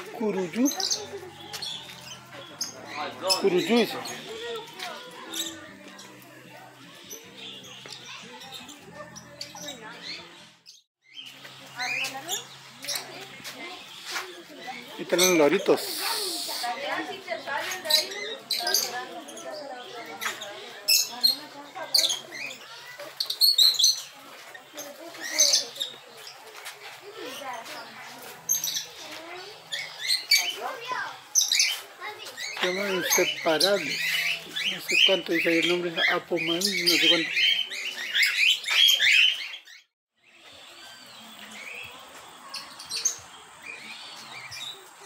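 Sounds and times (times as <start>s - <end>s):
lovebirds chattering shrilly: 0.0s - 26.4s, 27.0s - 45.0s
small parrots chirping: 20.2s - 26.4s, 29.6s - 39.9s.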